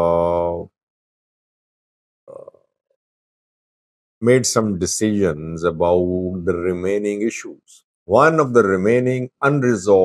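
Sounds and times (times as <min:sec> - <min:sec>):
man's croaky throat sound: 0:02.3 - 0:02.6.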